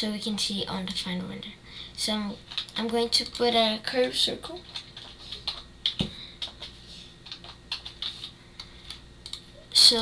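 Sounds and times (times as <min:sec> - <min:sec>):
computer keyboard keystrokes: 0:04.6 - 0:09.4.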